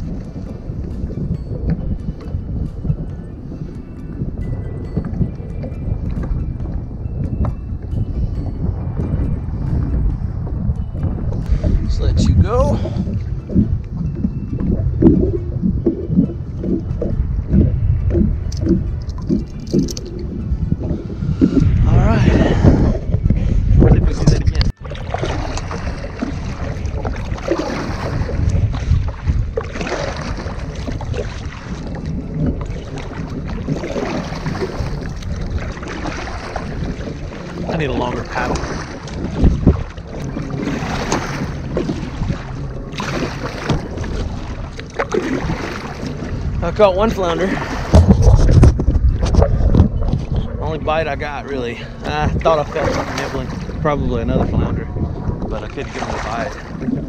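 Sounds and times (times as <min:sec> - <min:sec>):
water splashing around kayak: 0:00.0 - 0:57.0
wind rumbling on microphone: 0:00.0 - 0:57.0.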